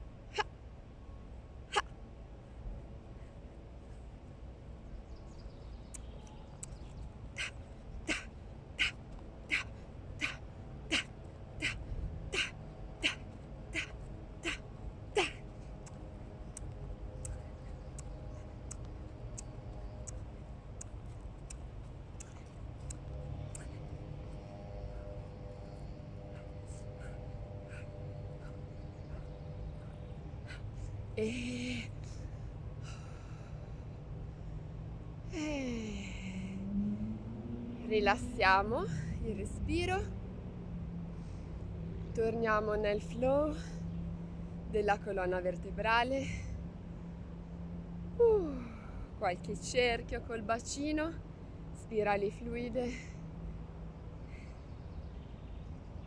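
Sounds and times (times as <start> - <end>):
low steady rumble: 0.0 - 56.0
woman breathing: 24.8 - 34.0.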